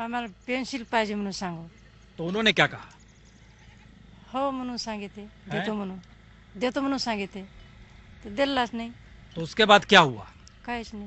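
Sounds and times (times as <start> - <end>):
woman speaking: 0.0 - 1.7, 4.3 - 6.0, 6.6 - 7.5, 8.2 - 9.0, 10.7 - 11.0
quiet outdoor background: 0.0 - 11.0.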